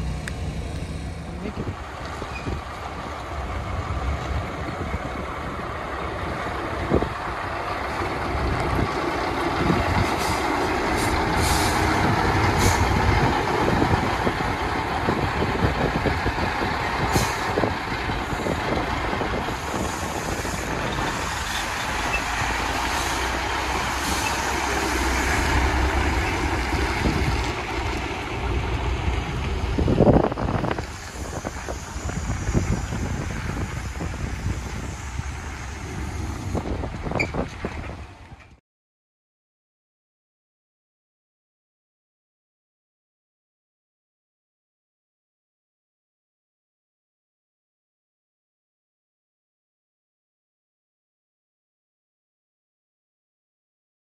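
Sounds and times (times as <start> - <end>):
truck diesel engine droning: 0.0 - 38.6.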